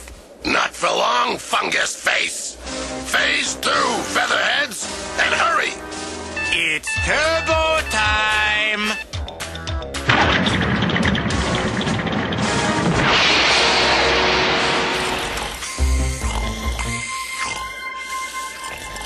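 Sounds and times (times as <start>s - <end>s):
cartoon background music: 2.6s - 19.0s
noisy crash sound effect: 10.0s - 15.7s.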